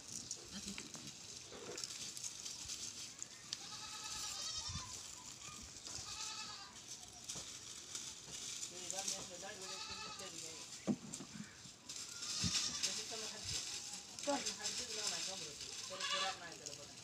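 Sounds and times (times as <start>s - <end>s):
goats bleating: 3.5s - 6.8s, 9.5s - 10.6s, 12.0s - 13.0s, 15.8s - 16.5s.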